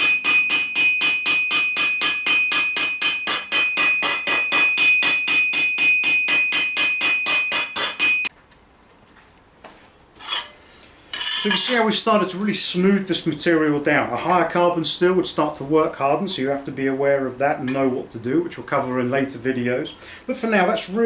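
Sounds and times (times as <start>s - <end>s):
hammer blows on steel: 0.0s - 8.3s
high ringing tone: 0.0s - 8.3s.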